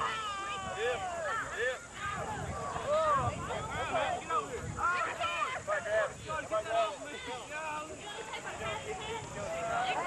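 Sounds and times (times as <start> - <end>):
young people talking and calling: 0.0 - 10.0.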